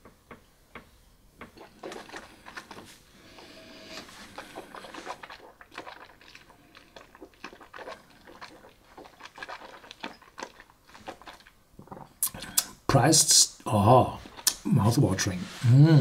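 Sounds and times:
person sipping: 1.5 - 12.8
wet mouth clicks and smacks: 4.4 - 12.8, 14.3 - 14.6.

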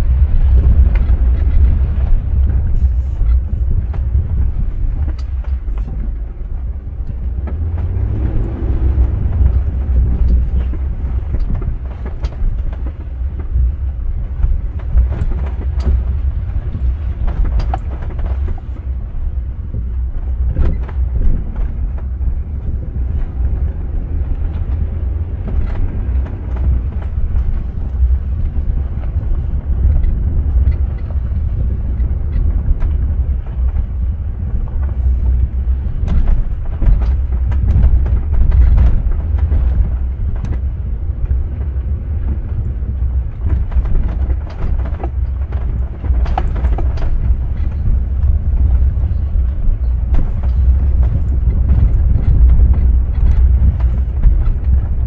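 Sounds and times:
knocks and rattles over bumps: 0.0 - 55.0
tyres and engine rumble: 0.0 - 55.0.

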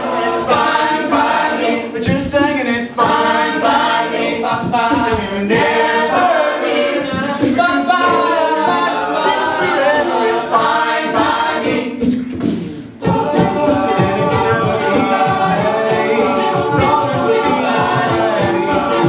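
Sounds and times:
group backing vocals: 0.0 - 19.0
man singing lead: 13.8 - 19.0.

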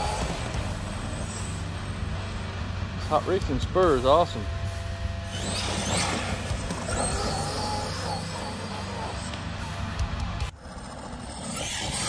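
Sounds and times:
electric motor whining: 0.0 - 1.8, 4.6 - 12.0.

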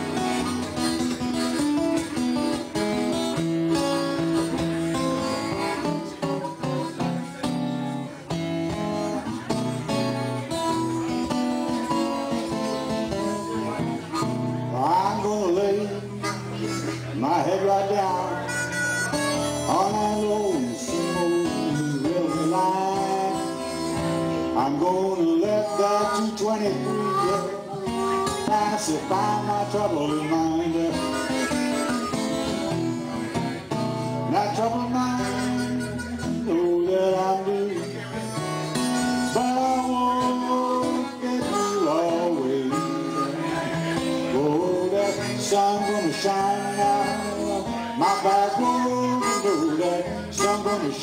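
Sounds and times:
acoustic guitar strumming: 0.0 - 51.0
blues harmonica with bent notes: 0.0 - 51.0.

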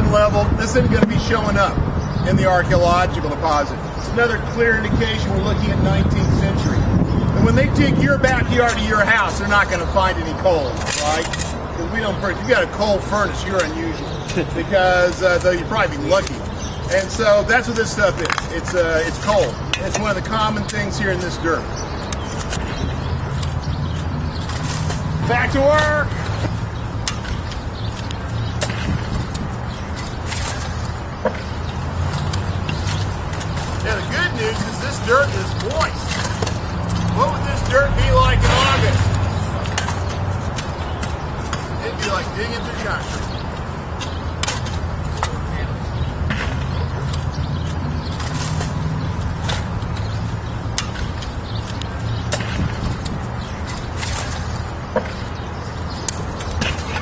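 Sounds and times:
shovels scraping dirt and rubble: 8.3 - 55.4, 56.0 - 57.0.

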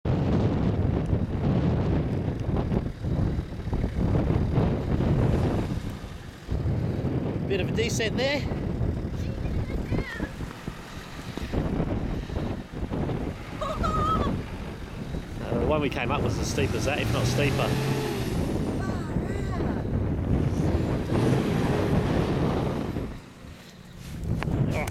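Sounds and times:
wind buffeting microphone: 0.0 - 24.9
four-wheel drive engine: 0.1 - 24.9.

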